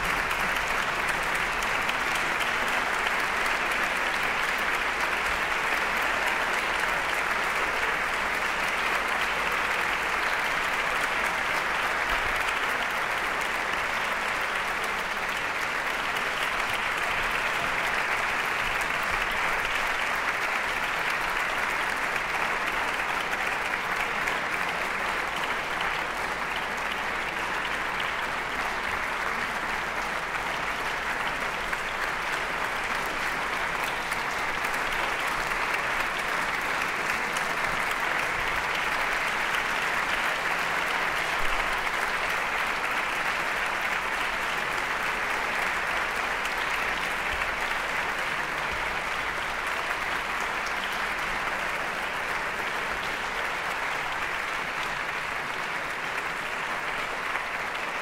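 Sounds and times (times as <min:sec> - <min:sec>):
audience applauding: 0:00.0 - 0:58.0.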